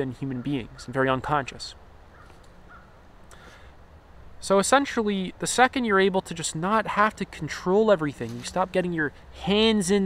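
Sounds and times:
distant bird calls: 0.0 - 4.0.

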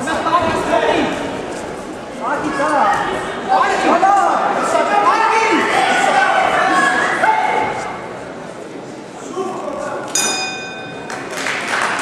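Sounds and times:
spectators shouting: 2.4 - 8.0
boxing ring bell ringing: 10.2 - 11.1.

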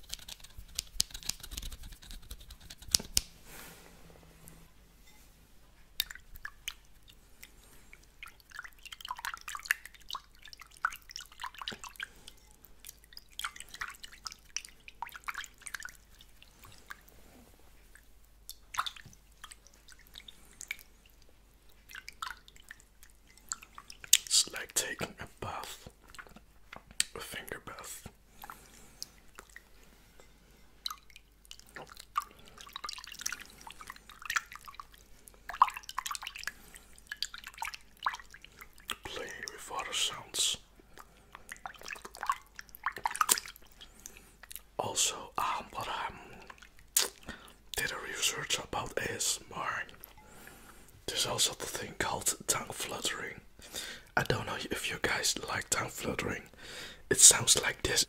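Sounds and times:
water drips and splashes: 6.0 - 53.2
fingers dabbling in water: 17.9 - 24.3, 28.3 - 29.7, 30.8 - 40.1, 40.9 - 44.6.

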